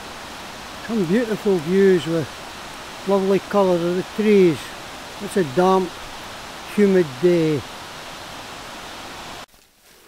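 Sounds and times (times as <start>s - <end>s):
water rushing over rapids: 0.0s - 9.5s.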